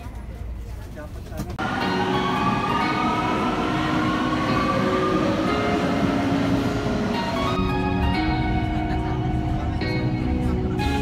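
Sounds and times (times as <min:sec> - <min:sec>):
noise inside train carriage: 0:00.0 - 0:11.0
subway train rumble: 0:00.0 - 0:11.0.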